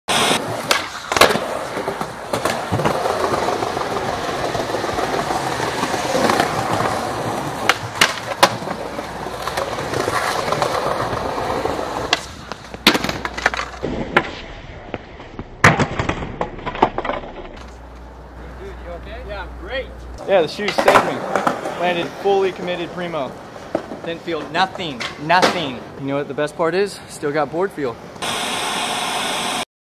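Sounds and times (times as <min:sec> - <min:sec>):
static-like hiss: 0:00.1 - 0:02.5, 0:28.0 - 0:29.6
skateboard wheels rolling on concrete: 0:00.1 - 0:29.6
skateboard clacks: 0:00.2 - 0:18.0, 0:20.6 - 0:22.0.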